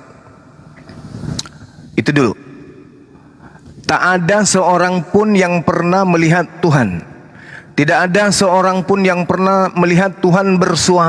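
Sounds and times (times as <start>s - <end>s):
person speaking: 1.4s - 2.6s, 3.7s - 7.1s.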